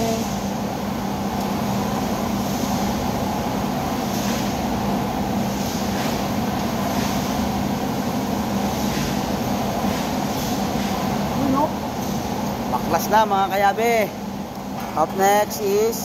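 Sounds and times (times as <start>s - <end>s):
garage mechanical hum: 0.0s - 16.0s.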